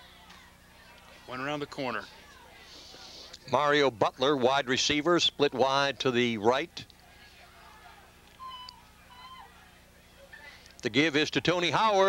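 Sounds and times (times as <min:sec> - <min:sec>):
steady low hum: 0:00.0 - 0:12.0
distant shouted calls: 0:07.2 - 0:10.0.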